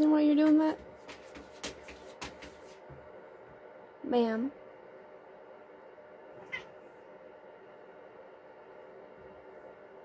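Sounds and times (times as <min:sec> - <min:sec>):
cat meowing: 0:06.4 - 0:06.8.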